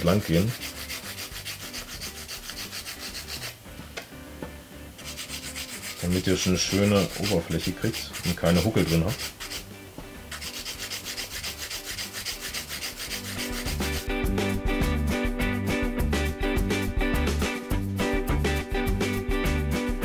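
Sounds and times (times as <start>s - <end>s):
nail file rubbing on nail: 0.0s - 3.6s, 5.0s - 9.7s, 10.3s - 14.1s
music with steady beat: 3.1s - 6.0s, 12.1s - 20.0s.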